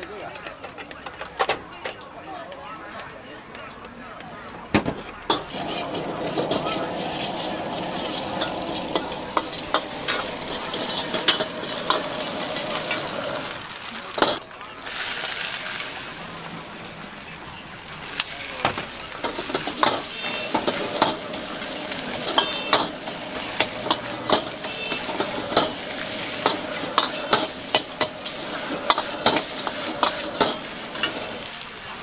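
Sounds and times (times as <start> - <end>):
ladle clanking against wok: 5.2 - 13.5, 18.2 - 31.6
vegetables sizzling in a wok: 5.3 - 32.0.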